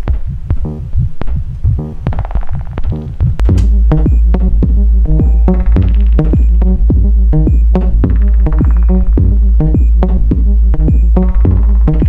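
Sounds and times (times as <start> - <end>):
synthesizer electronic groove: 0.0 - 12.0.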